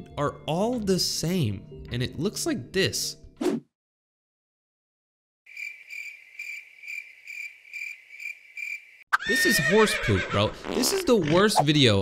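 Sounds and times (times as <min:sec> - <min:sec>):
crickets chirping: 0:05.5 - 0:09.1.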